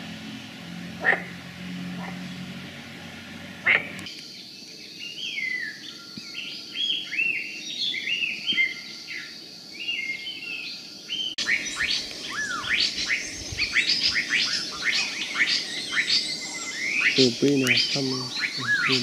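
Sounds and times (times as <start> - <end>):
birds chirping: 0.0 - 19.0
birds whistling falling notes: 11.1 - 19.0.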